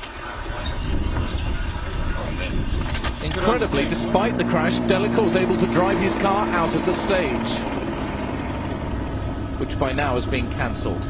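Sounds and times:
low rumble: 0.8s - 11.0s.

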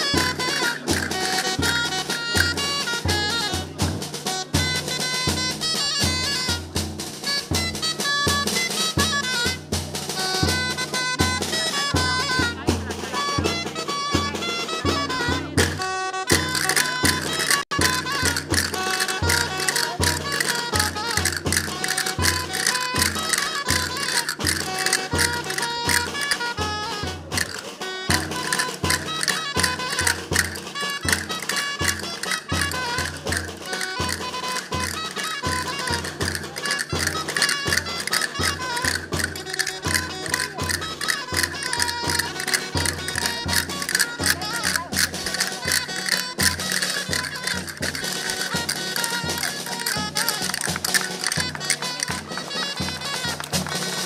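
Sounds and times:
folk dance melody: 0.0s - 54.0s
quick drum beat: 0.0s - 54.0s.

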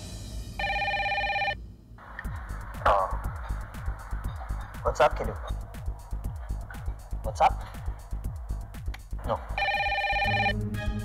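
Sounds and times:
phone ringing: 0.6s - 1.6s, 9.4s - 10.6s
pop music with drum beat: 2.2s - 9.5s.

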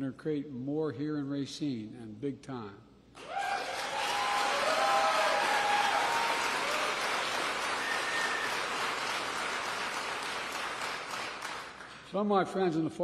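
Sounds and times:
audience applauding: 3.2s - 12.1s.

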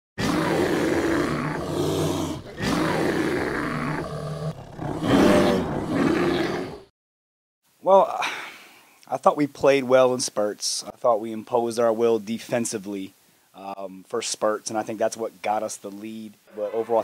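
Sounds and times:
long low animal roars: 0.2s - 6.9s.

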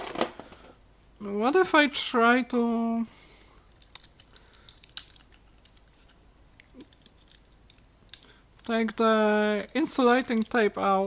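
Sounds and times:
light rustling of tape: 3.5s - 11.0s.

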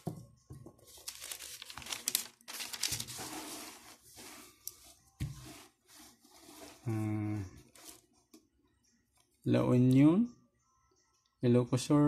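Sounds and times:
paper rustling and crinkling: 0.8s - 6.9s.

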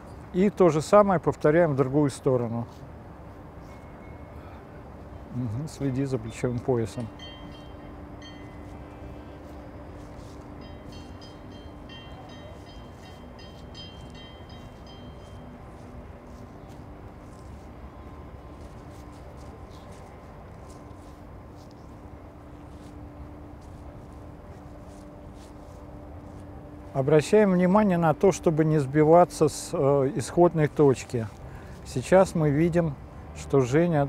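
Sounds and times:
distant traffic rumble: 0.0s - 34.0s
faint constant hum: 0.0s - 34.0s.

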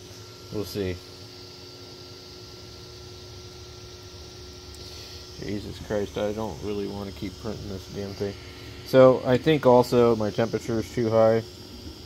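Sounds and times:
faint high whine: 0.0s - 12.0s
printer fans and motors humming: 0.0s - 12.0s.

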